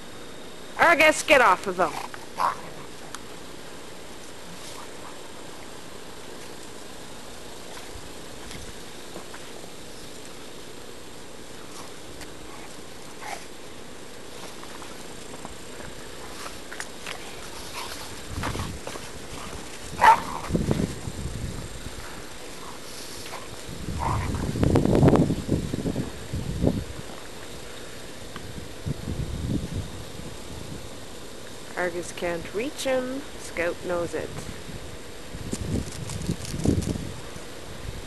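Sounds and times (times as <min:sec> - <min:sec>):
dogs growling: 0:01.8 - 0:03.3, 0:11.6 - 0:13.6, 0:15.7 - 0:21.0, 0:22.0 - 0:24.6.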